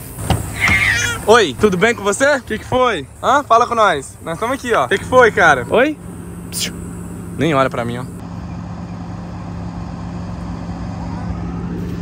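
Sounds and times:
car cabin hum and air rush: 0:00.0 - 0:12.0.

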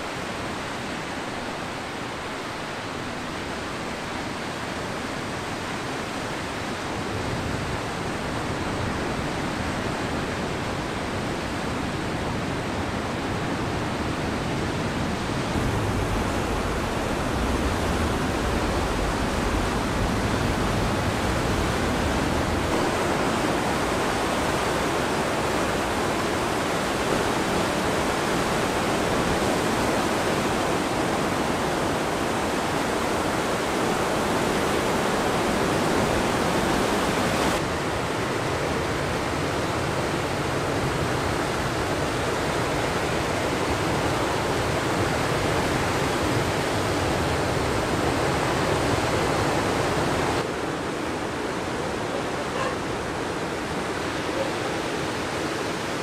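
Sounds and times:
waves breaking: 0:00.0 - 0:56.0.

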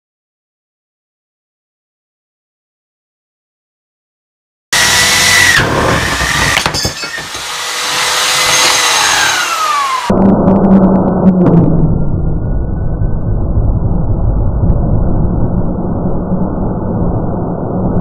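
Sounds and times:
bench grinder whine: 0:04.8 - 0:10.1
low steady hum: 0:10.1 - 0:18.0.

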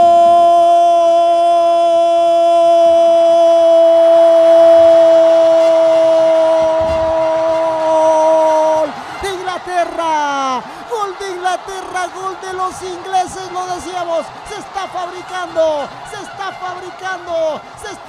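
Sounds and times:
commentator shouting goal: 0:00.0 - 0:04.0, 0:05.1 - 0:18.0.

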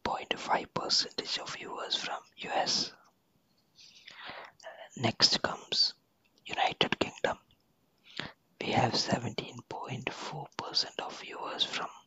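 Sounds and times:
person whispering: 0:00.0 - 0:03.0, 0:04.0 - 0:07.4, 0:08.1 - 0:12.0.

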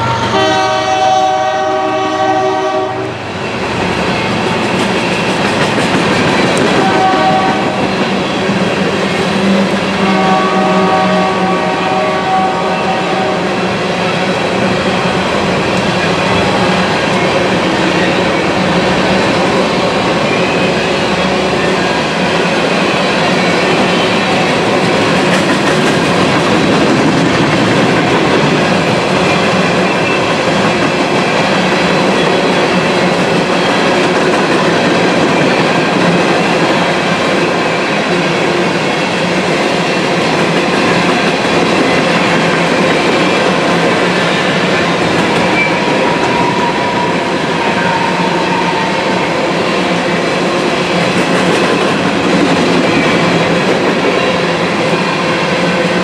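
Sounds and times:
freight train rumbling past: 0:00.0 - 0:56.0
train wheel squeal: 0:29.2 - 0:30.6, 0:44.0 - 0:49.4.

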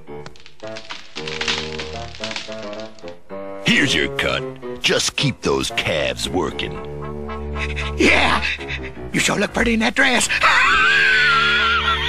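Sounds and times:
cartoon background music: 0:00.0 - 0:12.0
gold nuggets clinking: 0:00.2 - 0:03.3
man's voice: 0:03.6 - 0:06.9, 0:07.9 - 0:10.5.

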